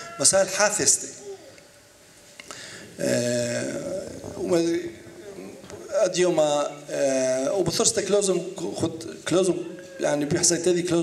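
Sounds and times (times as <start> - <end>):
man talking: 0.0 - 1.5, 3.0 - 11.0.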